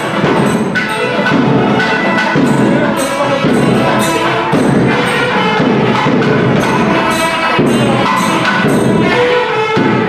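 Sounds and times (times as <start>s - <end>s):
drumming: 0.0s - 10.0s.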